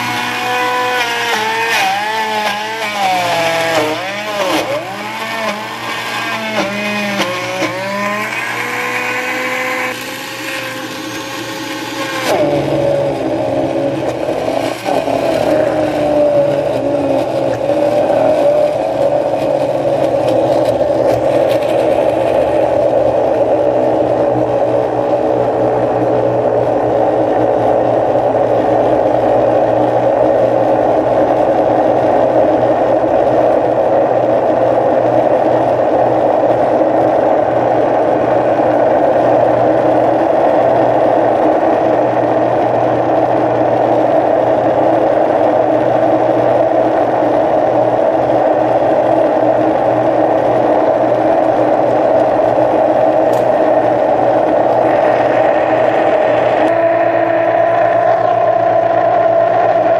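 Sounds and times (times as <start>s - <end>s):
blender running: 0.0s - 23.0s, 53.3s - 59.9s.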